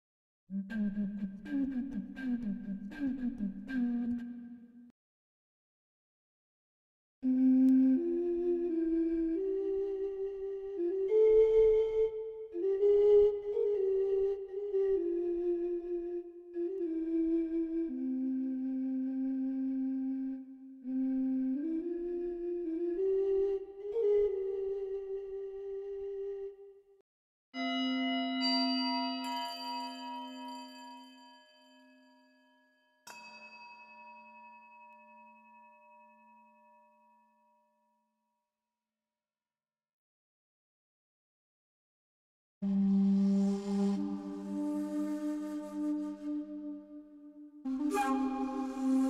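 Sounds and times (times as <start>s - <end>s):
flute melody with bending notes: 0.6s - 4.4s, 7.2s - 26.6s, 42.6s - 49.0s
singing bowl tones: 27.6s - 37.4s.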